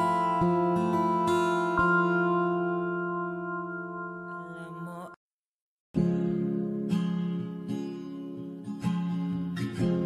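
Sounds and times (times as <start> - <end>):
guitar chord ringing out: 0.0 - 5.1.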